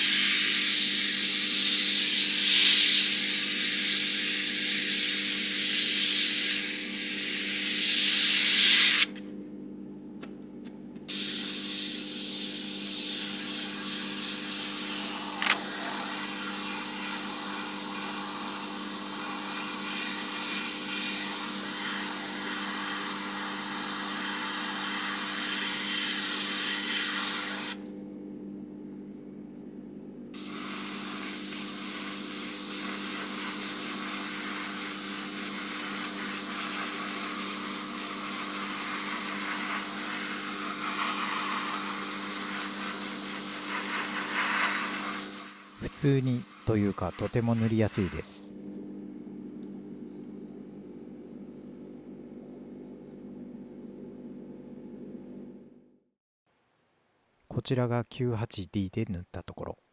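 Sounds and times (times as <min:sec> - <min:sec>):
airbrush spraying hiss: 0:00.0 - 0:09.1, 0:11.1 - 0:27.8, 0:30.4 - 0:48.5.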